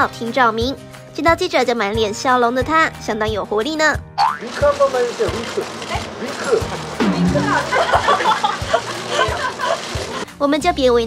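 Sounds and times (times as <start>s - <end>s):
reporter speaking: 4.5s - 6.1s
background music with beat: 6.3s - 10.4s.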